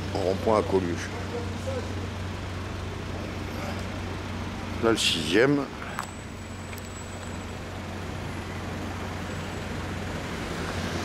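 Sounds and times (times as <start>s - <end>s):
engine hum: 0.0s - 11.0s
street noise: 0.0s - 11.0s.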